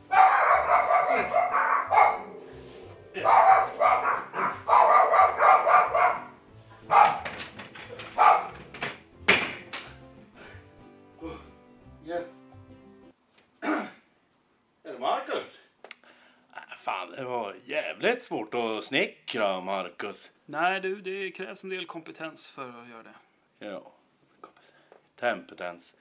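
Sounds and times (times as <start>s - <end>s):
small dog barking: 0.0s - 2.3s, 3.2s - 7.2s, 8.2s - 8.6s.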